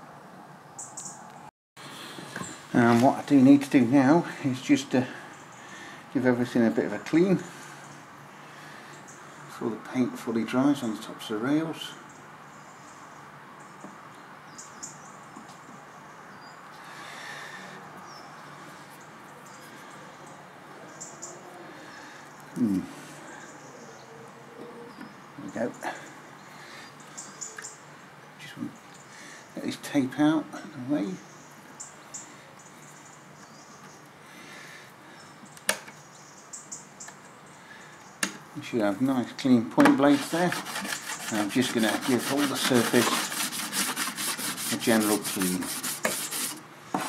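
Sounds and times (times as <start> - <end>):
background hiss: 0.7 - 13.8, 14.5 - 47.0
small birds chirping: 6.9 - 9.5, 11.8 - 39.6
hand rubbing metal rails: 40.0 - 46.6.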